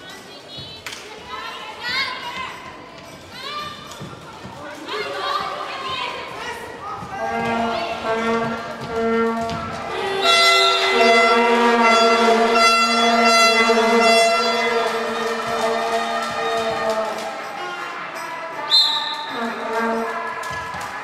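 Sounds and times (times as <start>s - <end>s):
brass long held notes: 7.2s - 17.6s, 19.3s - 20.3s.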